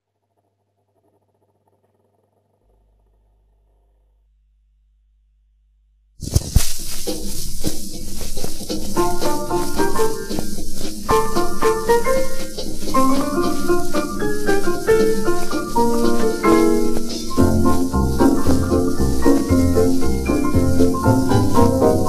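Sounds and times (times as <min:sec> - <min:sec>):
record hiss and crackle: 0:00.0 - 0:05.1, 0:06.2 - 0:22.0
needle set down on record: 0:06.2 - 0:22.0
instrumental dance music: 0:06.3 - 0:22.0.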